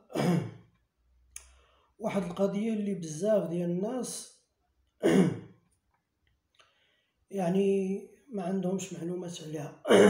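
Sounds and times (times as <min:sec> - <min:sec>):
mouth click: 0:01.3 - 0:01.6.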